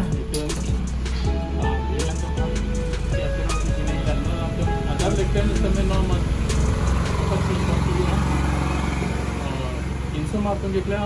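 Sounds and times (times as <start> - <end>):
engine low rumble: 0.0 - 11.0.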